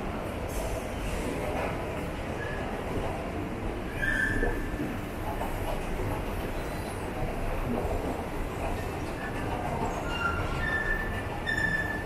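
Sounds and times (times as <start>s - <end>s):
short high squeal: 4.0s - 4.6s, 10.2s - 12.0s.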